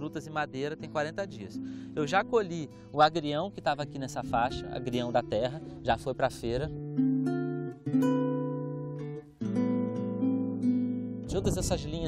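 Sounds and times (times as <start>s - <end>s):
acoustic guitar strummed chords: 0.0s - 11.8s.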